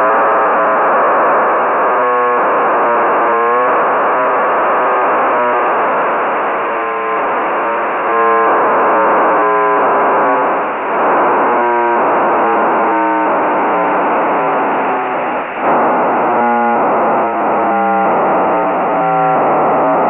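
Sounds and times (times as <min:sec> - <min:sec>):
receiver noise hiss: 0:00.0 - 0:20.0
buzzy data signal bursts: 0:03.0 - 0:20.0.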